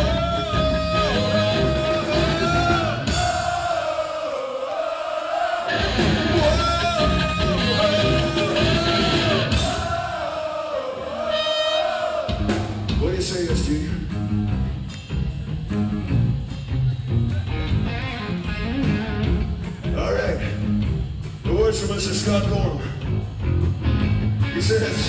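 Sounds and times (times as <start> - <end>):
live rock band playing: 0.0 - 3.7, 5.7 - 10.0, 11.3 - 25.0
steady drum beat: 0.0 - 10.5, 12.1 - 24.4.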